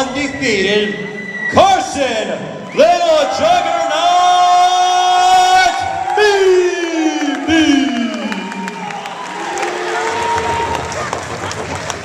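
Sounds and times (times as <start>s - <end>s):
crowd cheering: 1.1s - 12.0s.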